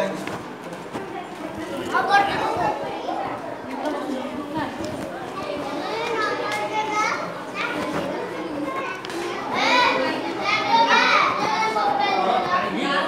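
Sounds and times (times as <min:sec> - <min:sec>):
children chattering and calling: 0:00.0 - 0:13.0.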